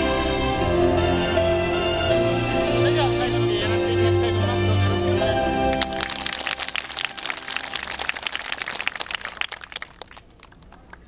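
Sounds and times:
small crowd applauding: 5.7 - 11.0.

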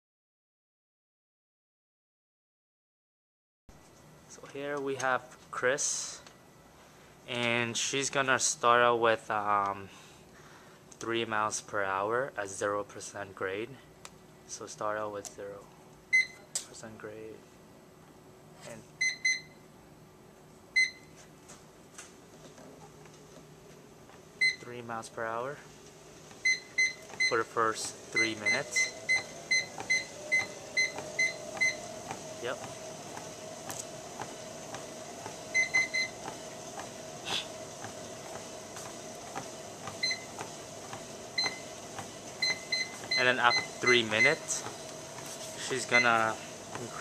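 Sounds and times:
treadmill console beeping: 16.1 - 16.5, 19.0 - 19.6, 20.7 - 21.2, 24.1 - 25.1, 25.8 - 47.0.

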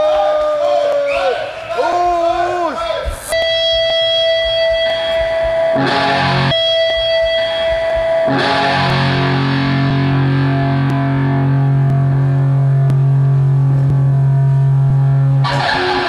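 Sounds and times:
distorted electric guitar: 3.0 - 16.0
bass: 3.1 - 16.0.

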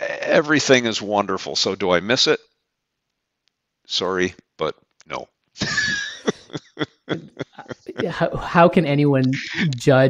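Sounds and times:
men laughing: 5.6 - 8.4.

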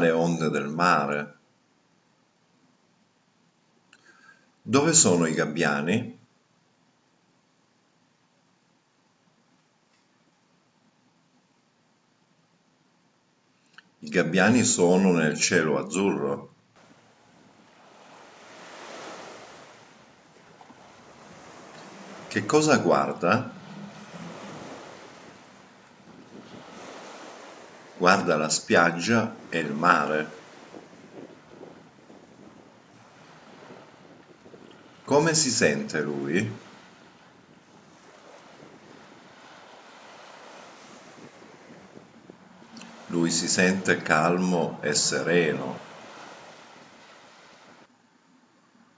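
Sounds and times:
sea waves washing on shore: 16.8 - 47.9.

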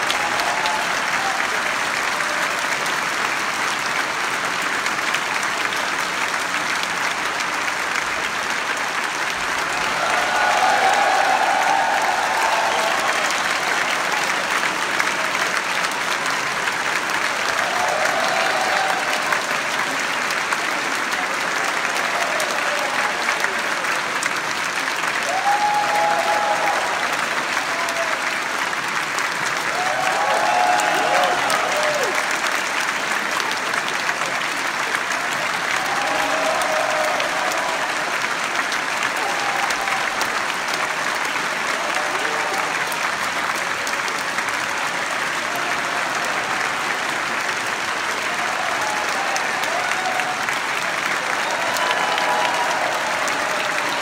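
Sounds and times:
shouted cheers: 0.0 - 2.9, 9.5 - 15.9, 17.1 - 20.4, 21.6 - 23.9, 24.8 - 28.7, 29.4 - 54.0
audience applauding: 0.0 - 54.0.

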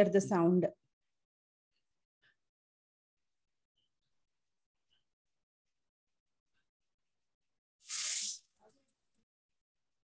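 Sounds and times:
loud hissing burst: 7.8 - 8.4.

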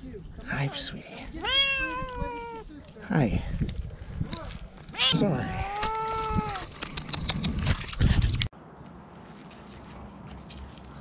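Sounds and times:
cat meowing: 1.4 - 2.6, 4.9 - 6.6.

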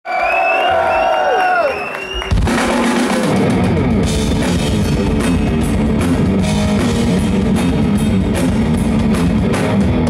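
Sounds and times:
heavy metal band playing live: 2.3 - 10.0.

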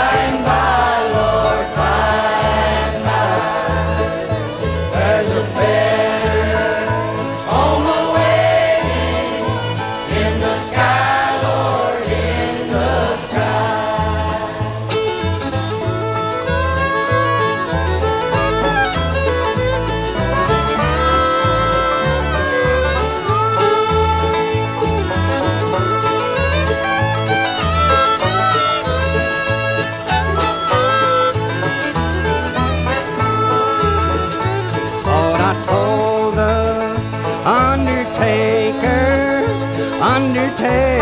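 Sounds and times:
acoustic country string band: 0.0 - 41.0.

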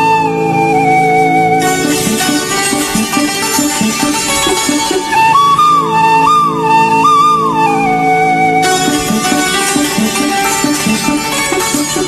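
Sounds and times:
flute melody: 0.0 - 12.0
held chords: 0.0 - 12.0
plucked rhythmic figure: 1.6 - 7.5, 8.6 - 12.0.

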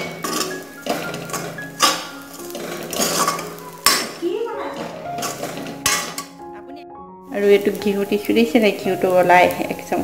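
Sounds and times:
steel spoon scraping metal wok: 0.0 - 6.5.

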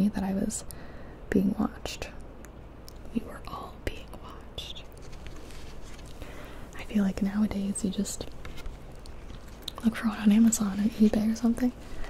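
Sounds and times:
woman whispering: 3.1 - 4.9, 6.7 - 8.3, 9.8 - 11.8.

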